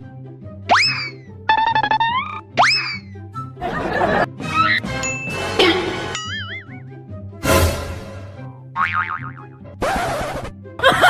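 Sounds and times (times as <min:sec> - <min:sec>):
backing music: 0:02.5 - 0:09.8.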